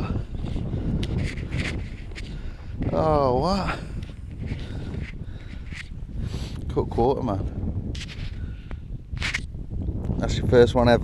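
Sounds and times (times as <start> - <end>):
wind buffeting microphone: 0.0 - 11.0
brief rustles: 0.5 - 3.0, 4.0 - 6.0, 8.0 - 8.4, 9.2 - 9.5.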